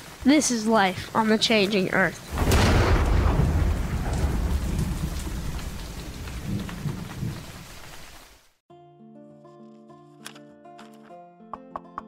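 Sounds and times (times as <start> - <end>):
steady rain: 0.0 - 8.6
rolling thunder rumble: 1.0 - 8.2.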